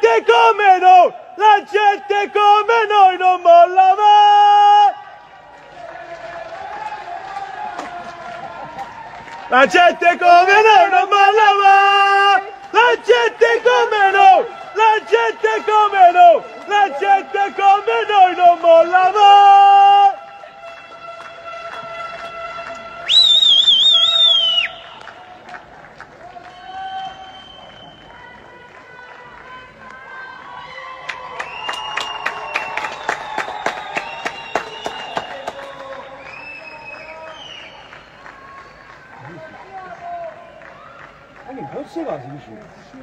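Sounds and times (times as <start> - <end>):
loud wavering whistle: 23.0 - 25.1, 26.6 - 28.1
faint crowd hubbub: 24.6 - 31.5.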